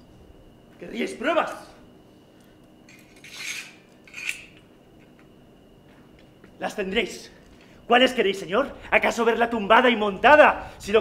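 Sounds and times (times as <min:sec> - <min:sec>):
sword metallic scrapes: 0:03.1 - 0:04.5.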